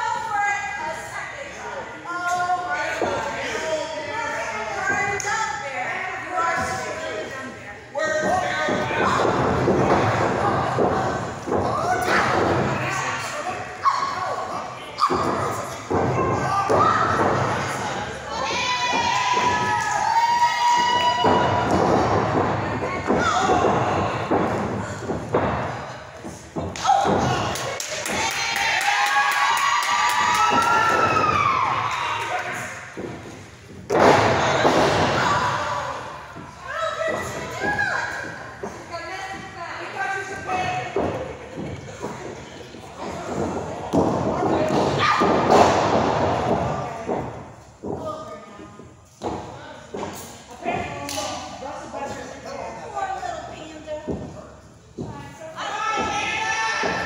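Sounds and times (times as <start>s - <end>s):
people yelling and shouting: 0.0s - 33.1s, 33.9s - 42.4s, 43.0s - 47.2s, 55.3s - 57.0s
thuds on ring boards: 18.4s - 28.3s
bodies crashing on wrestling ring: 32.9s - 38.4s.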